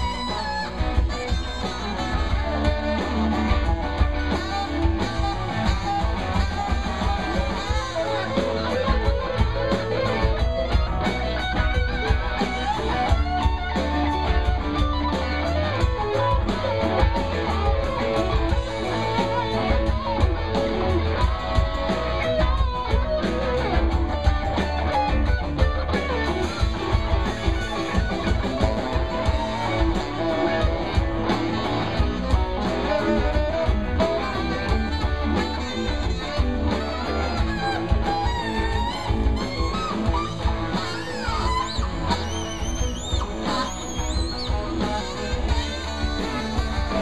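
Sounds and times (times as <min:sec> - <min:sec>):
bass guitar: 0:00.0 - 0:47.0
drums with steady beat: 0:00.0 - 0:47.0
electric guitar lead: 0:00.0 - 0:47.0.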